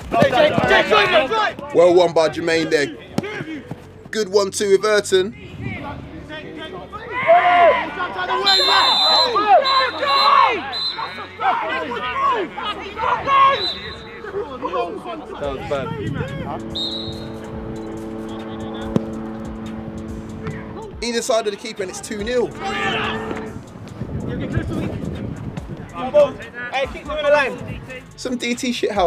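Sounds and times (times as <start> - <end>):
men shouting: 0.1 - 1.6, 21.9 - 23.6
referee's whistle blowing: 8.3 - 11.4, 13.3 - 14.2, 16.1 - 20.9, 22.4 - 23.6
held musical chord: 15.4 - 23.9.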